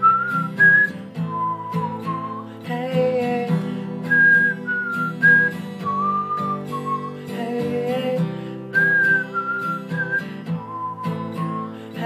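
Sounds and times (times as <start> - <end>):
man whistling a melody: 0.0 - 12.0
strummed acoustic guitar: 0.0 - 12.0.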